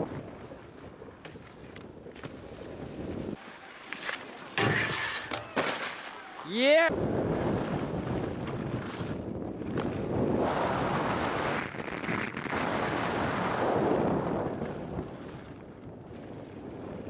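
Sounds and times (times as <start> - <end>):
wind rushing over microphone: 6.9 - 17.0
skis hissing over snow: 10.4 - 14.2.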